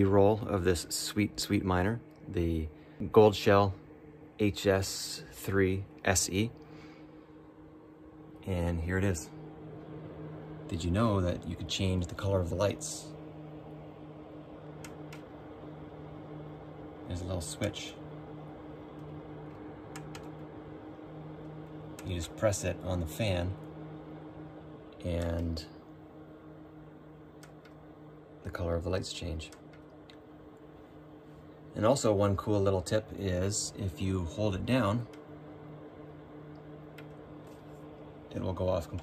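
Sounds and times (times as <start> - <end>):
cooling fan humming: 0.0 - 39.0
low steady tones: 0.0 - 39.0.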